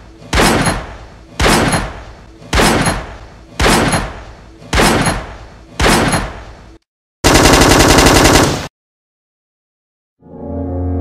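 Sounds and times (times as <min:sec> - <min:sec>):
single gunshot: 0:00.3 - 0:06.4
automatic gunfire burst: 0:07.2 - 0:08.7.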